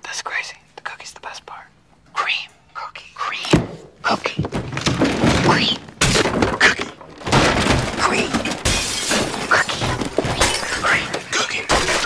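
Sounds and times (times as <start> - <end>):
crashes and smashing: 4.5 - 12.0
things shattering: 4.6 - 12.0.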